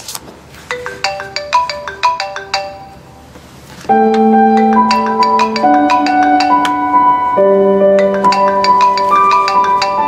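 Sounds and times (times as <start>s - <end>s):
phone ringtone marimba notes: 0.7s - 3.2s, 3.9s - 10.0s.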